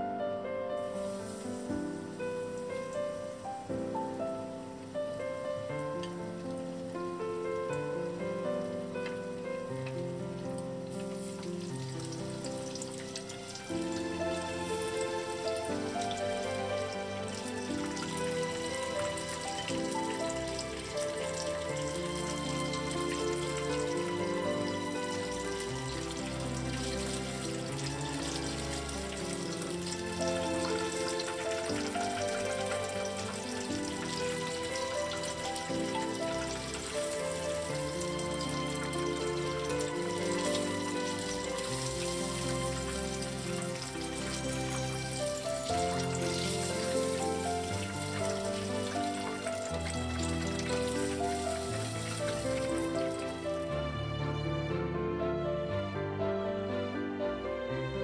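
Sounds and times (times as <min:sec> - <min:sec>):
background music: 0:00.0 - 0:58.0
fish frying in oil: 0:00.9 - 0:53.7.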